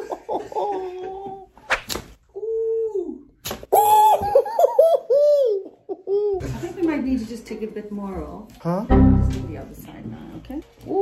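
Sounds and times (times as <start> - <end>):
man laughing: 0.0 - 1.5, 3.8 - 6.4.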